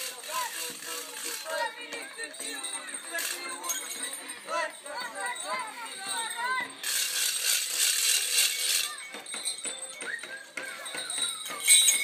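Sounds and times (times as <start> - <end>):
costume bells and rattles jingling: 0.0 - 12.0.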